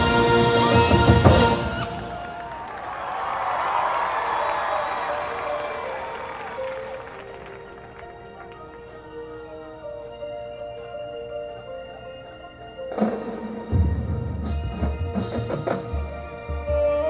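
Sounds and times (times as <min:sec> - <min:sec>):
marching band brass and percussion hit: 0:00.0 - 0:02.4, 0:12.9 - 0:16.2
crowd applause and cheering: 0:00.0 - 0:09.4
soft sustained music notes: 0:05.7 - 0:17.0.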